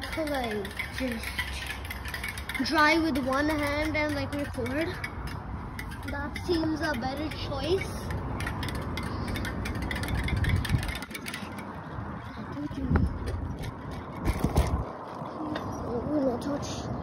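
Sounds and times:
bike clicks and rattles: 0:00.0 - 0:15.9
tyres on pavement: 0:00.0 - 0:17.0
wind on microphone: 0:04.4 - 0:17.0.

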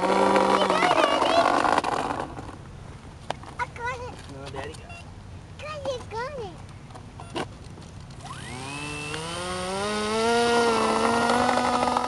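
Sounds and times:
model plane motor buzzing whine: 0:00.0 - 0:02.2, 0:08.2 - 0:12.0.

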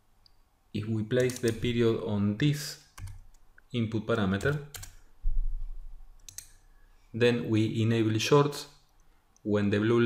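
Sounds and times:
keyboard clicks: 0:01.2 - 0:01.8, 0:03.0 - 0:03.4, 0:04.4 - 0:05.0, 0:06.2 - 0:06.6.

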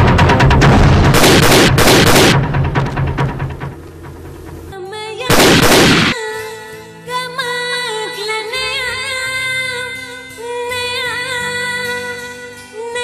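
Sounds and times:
rapid automatic gunfire: 0:00.0 - 0:04.2, 0:05.3 - 0:06.2
loud blasts: 0:00.0 - 0:04.7, 0:05.3 - 0:06.2
background music: 0:00.0 - 0:13.0.

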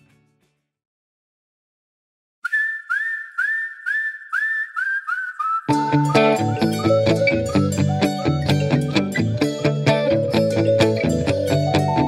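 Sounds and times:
person whistling a tune: 0:02.4 - 0:09.3.

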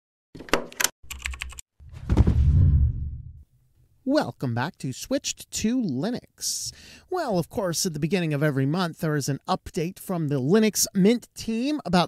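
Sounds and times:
sharp typing clicks: 0:00.8 - 0:01.6
deep boom: 0:01.9 - 0:03.4.

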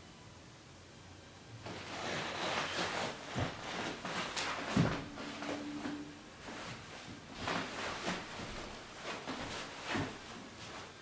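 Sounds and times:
bare feet on wooden floorboards: 0:01.6 - 0:11.0
heavy foot stamps: 0:01.6 - 0:11.0
cloth uniform rustling and snapping: 0:01.7 - 0:11.0.

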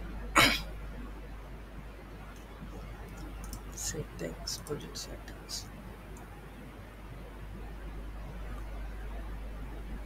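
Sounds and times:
man coughing: 0:00.4 - 0:00.7.

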